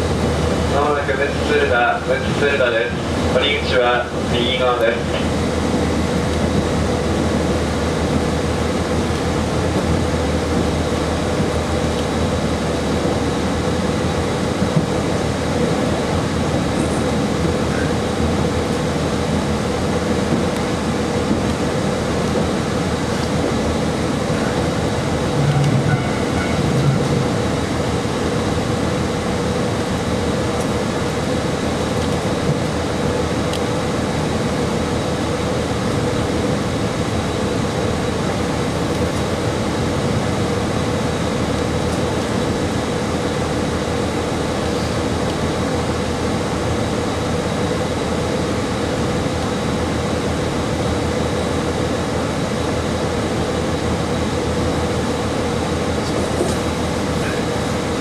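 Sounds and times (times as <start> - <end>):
diesel railcar engine idling: 0.0 - 58.0.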